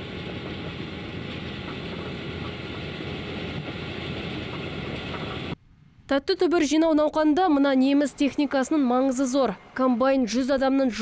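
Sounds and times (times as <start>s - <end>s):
harvester engine and machinery: 0.0s - 5.6s.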